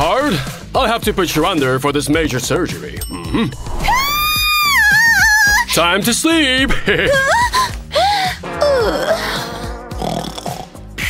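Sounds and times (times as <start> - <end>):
background music: 0.0 - 11.0
person moaning: 3.1 - 4.3, 7.2 - 9.8.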